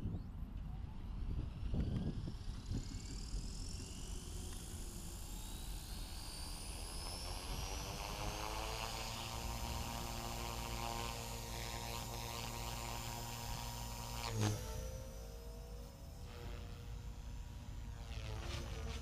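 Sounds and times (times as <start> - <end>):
rc helicopter rotor whining: 0.1 - 19.0.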